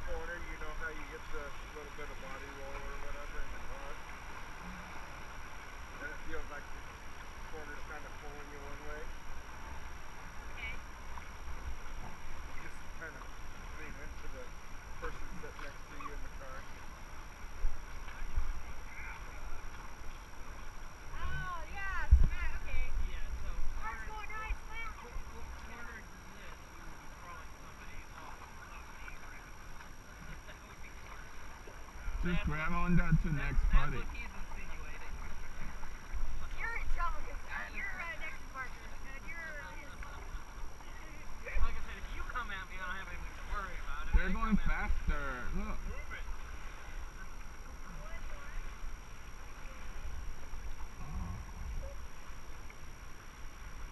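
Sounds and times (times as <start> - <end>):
river water rushing: 0.0 - 53.9
low rumble: 47.3 - 52.8.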